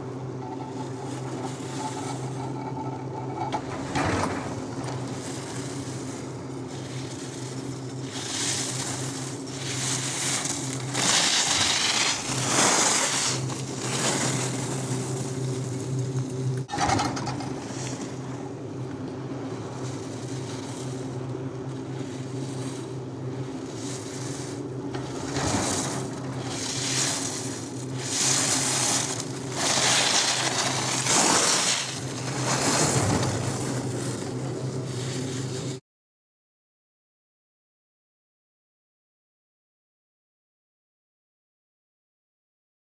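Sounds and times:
steady low hum: 0:00.0 - 0:35.8
skis swishing on snow: 0:04.8 - 0:16.6, 0:19.6 - 0:35.8.

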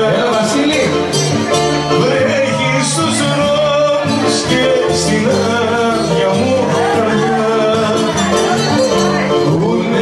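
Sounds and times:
bouzouki: 0:00.0 - 0:10.0
guitar: 0:00.0 - 0:10.0.

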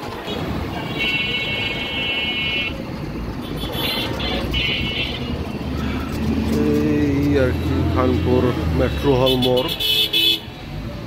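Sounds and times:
street traffic: 0:00.0 - 0:11.0
heavy vehicle engine drone: 0:01.8 - 0:09.2.

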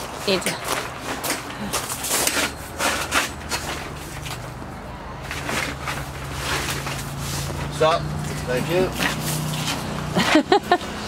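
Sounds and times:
tarp rustling: 0:05.2 - 0:10.4.

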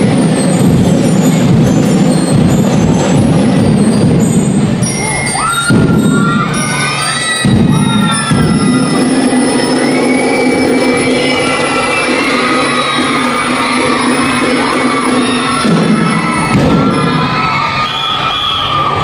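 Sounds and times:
drum and lyre band music: 0:00.0 - 0:17.7
children cheering and shouting: 0:00.0 - 0:19.0.

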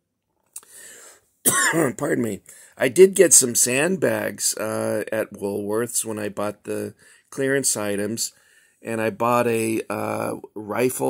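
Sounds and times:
man coughing: 0:01.4 - 0:02.1.

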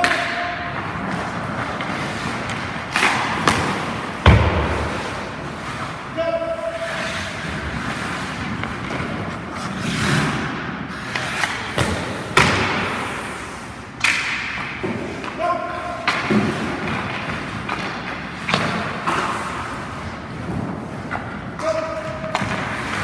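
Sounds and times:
pucks and sticks thumping: 0:00.0 - 0:23.0
skate blades scraping ice: 0:00.8 - 0:13.8, 0:16.3 - 0:23.0.

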